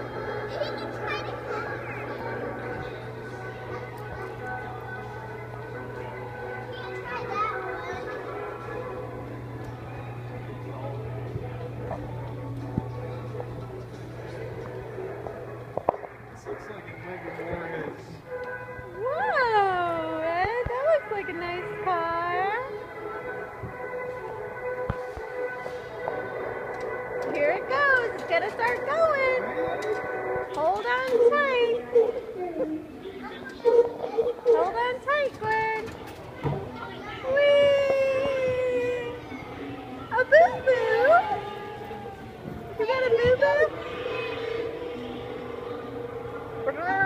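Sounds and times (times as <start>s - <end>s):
steady low hum: 0.0s - 33.2s
background music: 0.0s - 47.0s
child's voice: 0.4s - 2.5s, 6.6s - 8.5s
people talking: 19.0s - 22.8s, 27.3s - 29.8s, 30.6s - 35.9s, 36.6s - 47.0s.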